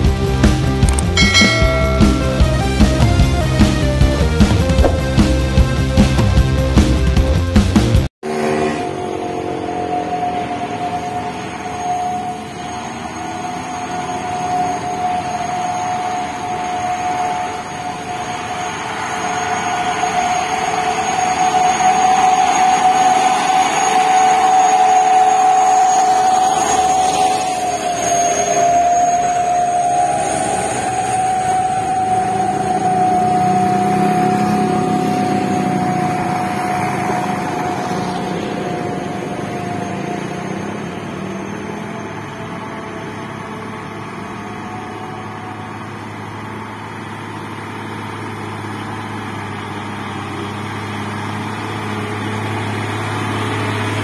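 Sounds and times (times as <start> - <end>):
deep heavy truck engine: 0.0 - 54.0
diesel trucks labouring uphill: 0.0 - 54.0.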